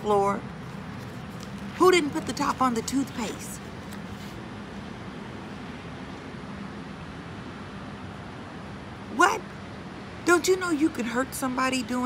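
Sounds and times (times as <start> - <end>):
even outdoor hiss: 0.0 - 12.0
faint low hum: 0.0 - 12.0.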